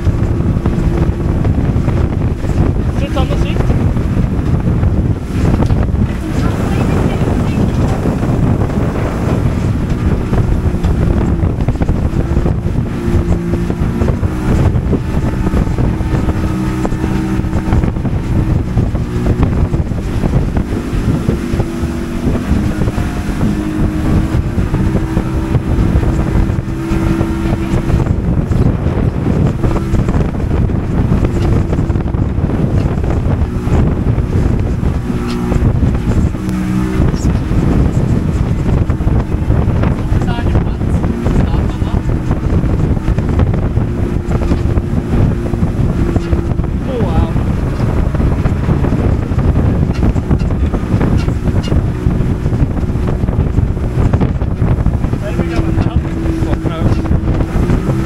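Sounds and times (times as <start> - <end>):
motorboat engine hum: 0.0 - 58.0
wind on microphone: 0.0 - 58.0.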